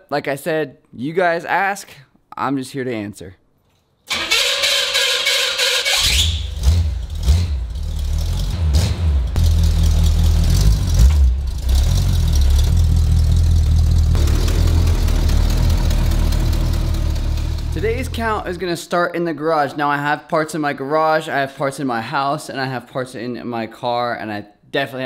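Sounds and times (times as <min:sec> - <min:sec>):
car engine starting and rumbling: 0:04.1 - 0:18.6.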